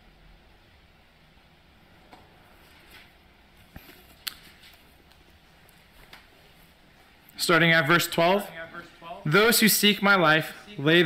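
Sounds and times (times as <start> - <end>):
soft handling clicks and rustles: 2.0 - 7.4.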